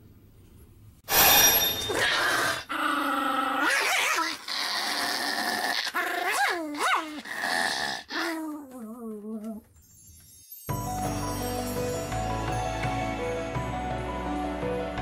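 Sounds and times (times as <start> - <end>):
small dog growling and barking: 2.0 - 9.6.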